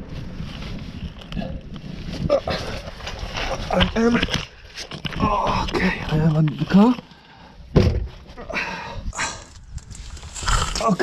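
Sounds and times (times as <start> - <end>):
tourniquet rustling and scraping: 0.0 - 7.3, 9.2 - 11.0
knock: 7.8 - 8.1.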